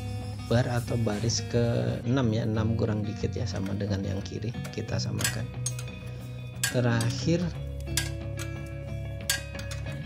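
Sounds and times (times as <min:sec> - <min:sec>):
background music: 0:00.0 - 0:10.0
metal spanner clinks: 0:04.6 - 0:10.0.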